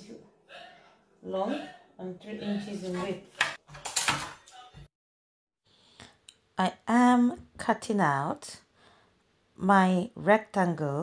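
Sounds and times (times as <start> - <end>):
steel ruler scraping and clattering: 3.4 - 4.5.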